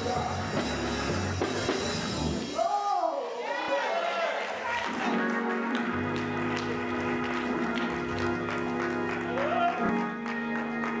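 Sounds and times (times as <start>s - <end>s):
people clapping along: 3.9s - 11.0s.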